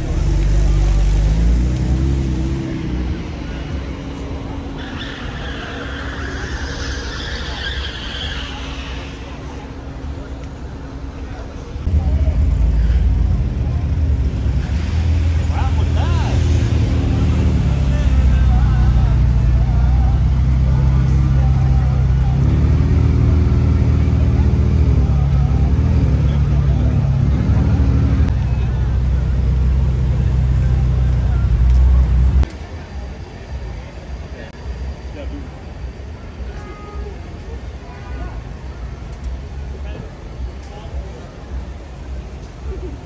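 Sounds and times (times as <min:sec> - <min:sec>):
car engine deep drone: 0:00.0 - 0:33.1
onlookers' voices: 0:00.0 - 0:43.0.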